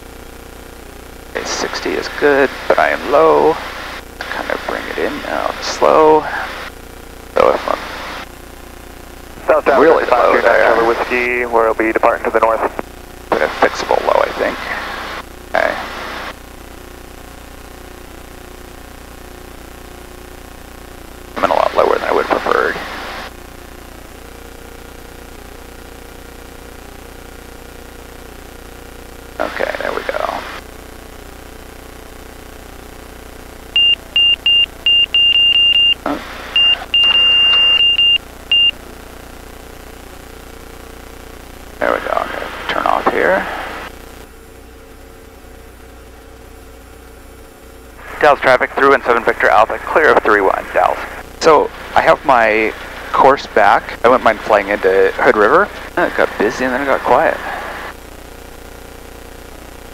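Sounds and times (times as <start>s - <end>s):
cockpit warning tone beeping: 33.8s - 38.8s.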